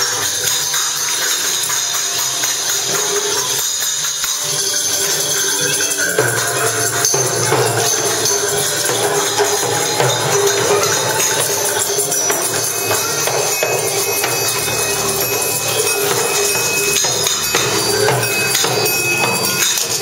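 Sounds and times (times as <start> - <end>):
tambourines and shakers jangling: 0.0 - 20.0.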